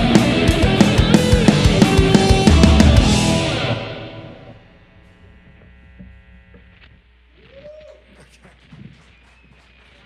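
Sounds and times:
electric guitar chord ringing: 0:00.0 - 0:07.0
amplifier hum: 0:00.0 - 0:10.0.

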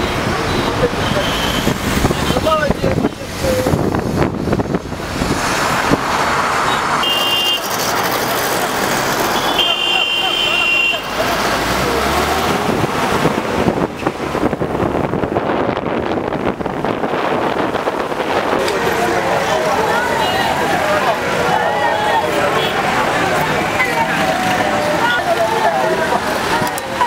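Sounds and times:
traffic engines and tyres: 0:00.0 - 0:27.0.

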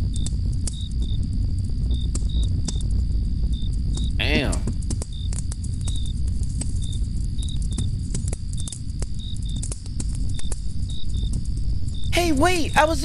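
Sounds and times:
sharp crackles: 0:00.0 - 0:12.5
continuous low rumble: 0:00.0 - 0:13.0
crickets chirping: 0:00.0 - 0:13.0.

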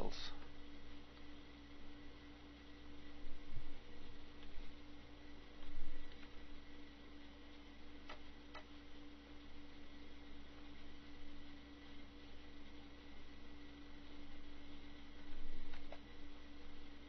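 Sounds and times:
electrical hum and hiss: 0:00.0 - 0:17.0.

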